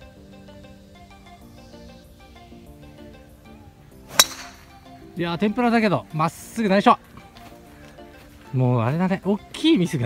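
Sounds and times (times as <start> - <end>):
plucked guitar music: 0.0 - 6.2
golf club striking ball: 4.1 - 4.9.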